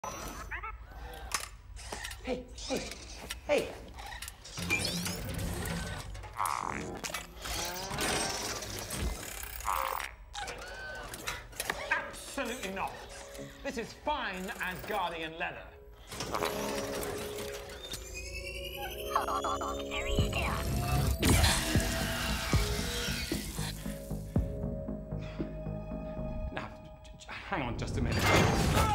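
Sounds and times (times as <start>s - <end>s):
robot servos whirring: 1.2s - 13.4s, 20.3s - 23.8s
electronic warbling chirps: 17.5s - 23.4s.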